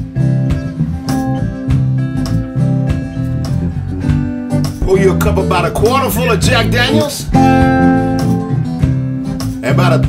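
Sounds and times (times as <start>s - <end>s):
held low bass notes: 0.0s - 9.6s
acoustic guitar strums: 0.0s - 10.0s.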